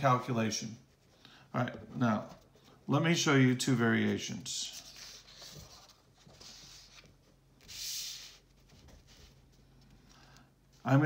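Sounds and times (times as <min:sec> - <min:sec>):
paper sheets rubbing: 0:03.8 - 0:09.9.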